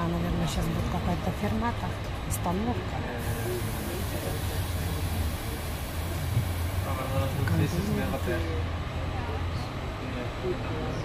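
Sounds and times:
train carriage rumble: 0.0 - 11.0
high hiss: 3.2 - 8.5.

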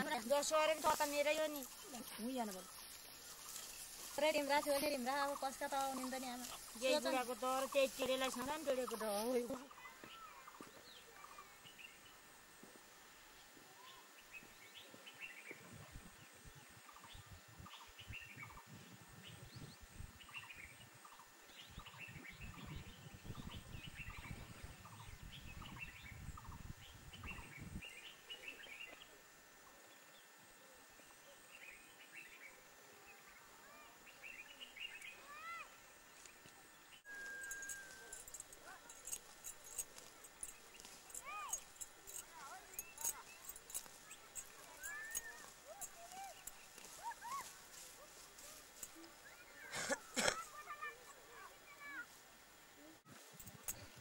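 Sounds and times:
dry stems crackling: 0.0 - 9.6, 37.1 - 49.2
faint bird chirps: 13.4 - 47.8
faint distant voices calling: 28.4 - 54.0.

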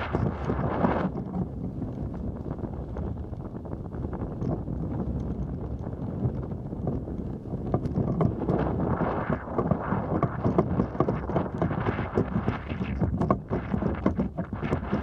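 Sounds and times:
wind buffeting microphone: 0.0 - 15.0
small clicks and knocks: 4.3 - 15.0.

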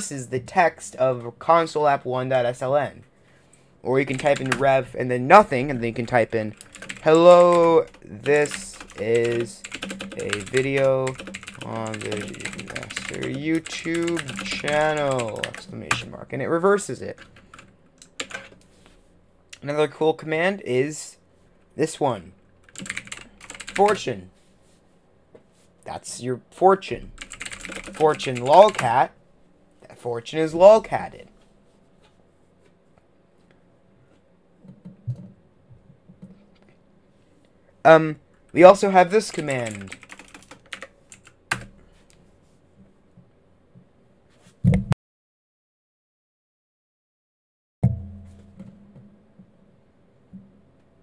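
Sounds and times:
computer keyboard keystrokes: 4.1 - 4.6, 6.5 - 16.0, 17.2 - 18.5, 22.7 - 24.0, 27.2 - 28.9, 39.3 - 41.7.

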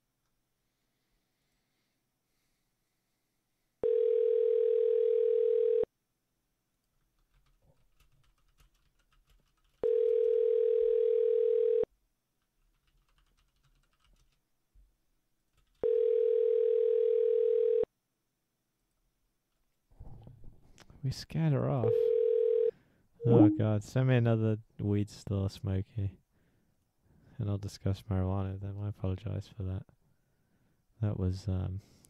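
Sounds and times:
telephone ringback tone: 3.8 - 5.9, 9.8 - 11.9, 15.8 - 17.9, 21.9 - 23.6.

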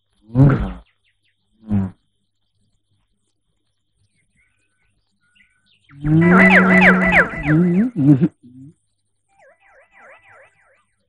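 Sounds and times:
faint bird chirps: 0.0 - 11.0.

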